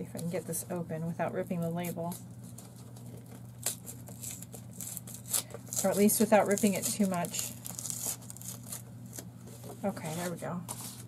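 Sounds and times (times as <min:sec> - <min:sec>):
steady low hum: 0:00.0 - 0:11.0
packaging rustling and clicking: 0:02.4 - 0:09.8.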